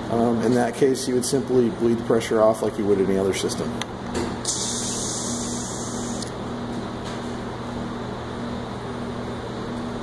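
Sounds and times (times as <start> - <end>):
shop machinery humming: 0.0 - 10.0
compressed air hissing: 4.5 - 6.3.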